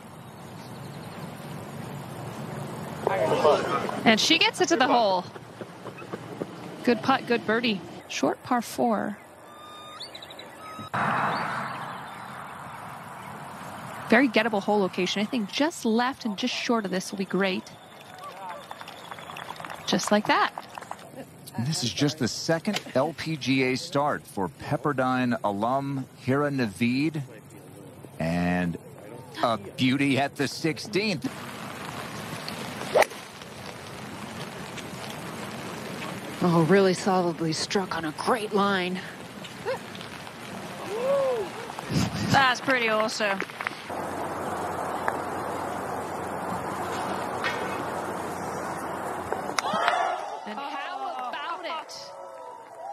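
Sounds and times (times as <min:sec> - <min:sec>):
steady outdoor hiss: 0:00.0 - 0:52.9
wash of noise: 0:31.3 - 0:49.6
golf club swish: 0:32.9 - 0:33.2.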